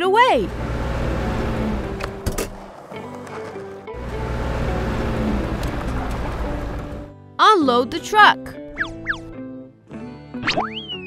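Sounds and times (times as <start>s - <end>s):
truck engine rumble: 0.0s - 7.1s
background music: 0.0s - 11.0s.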